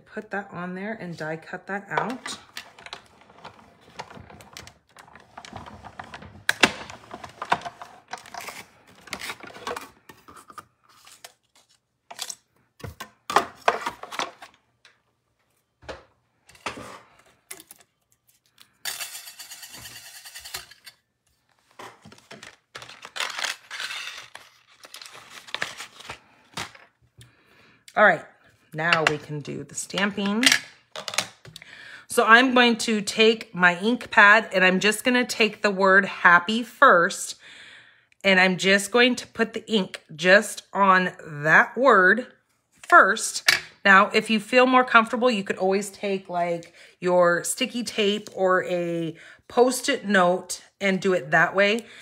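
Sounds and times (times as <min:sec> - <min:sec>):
paper rustling: 0:21.4 - 0:26.9.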